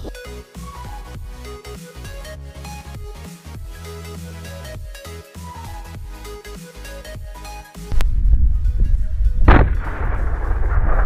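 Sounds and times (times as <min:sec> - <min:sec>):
firecracker exploding: 0:09.4 - 0:11.0.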